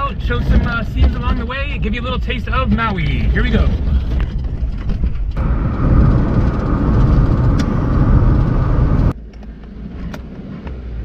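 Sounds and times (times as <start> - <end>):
quiet cabin rumble: 0.0 - 10.8
car rumbling on dirt road: 0.0 - 11.0.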